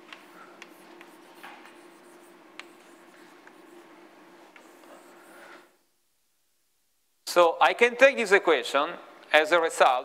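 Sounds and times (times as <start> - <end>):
low room hum: 0.0 - 10.0
chalk tapping on board: 0.6 - 3.8
chalk scratching on blackboard: 0.6 - 5.7.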